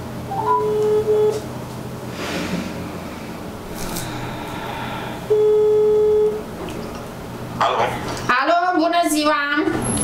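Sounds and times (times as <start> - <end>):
telephone ringback tone: 0.3 - 1.4, 5.3 - 6.4.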